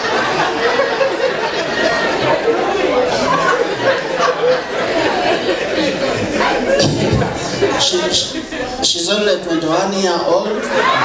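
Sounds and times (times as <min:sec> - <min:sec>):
people talking at once: 0:00.0 - 0:11.0.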